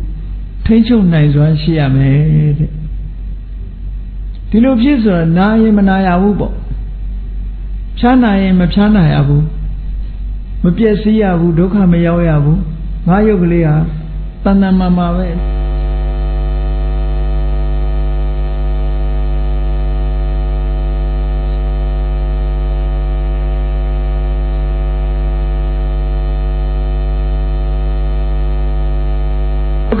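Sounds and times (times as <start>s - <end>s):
electrical mains hum: 0.0s - 30.0s.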